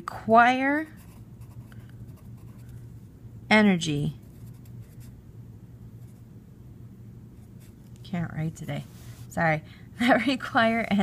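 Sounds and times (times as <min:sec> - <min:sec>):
pencil scratching on paper: 0:00.9 - 0:02.8, 0:04.3 - 0:05.1.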